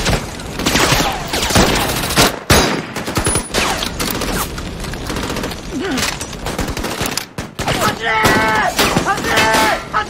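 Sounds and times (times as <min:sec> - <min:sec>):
rapid rifle and machine-gun fire: 0:00.0 - 0:10.0.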